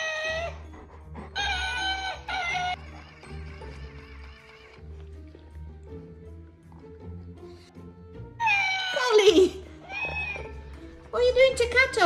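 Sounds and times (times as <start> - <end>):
background music: 0.0 - 12.0
toy cat meowing: 8.4 - 10.6.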